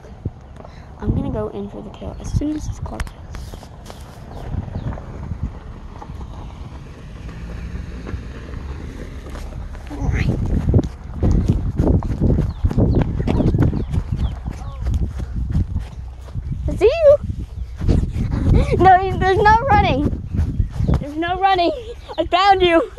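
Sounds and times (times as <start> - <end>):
running footsteps: 3.0 - 22.9.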